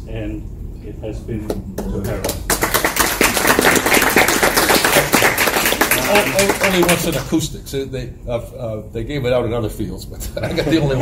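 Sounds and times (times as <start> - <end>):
audience applauding: 2.0 - 7.4.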